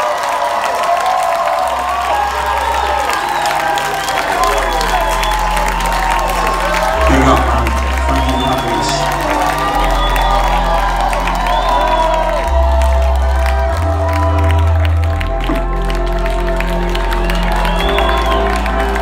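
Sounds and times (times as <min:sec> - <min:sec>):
crowd cheering: 0:00.0 - 0:19.0.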